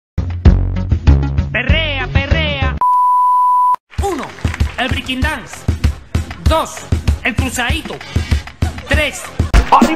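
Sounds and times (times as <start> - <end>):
electronic beep tone: 2.8 - 3.8.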